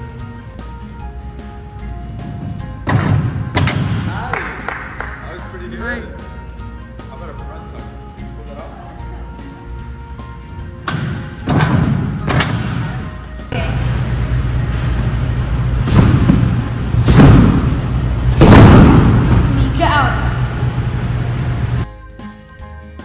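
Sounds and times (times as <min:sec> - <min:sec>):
music playing: 0:00.0 - 0:23.0.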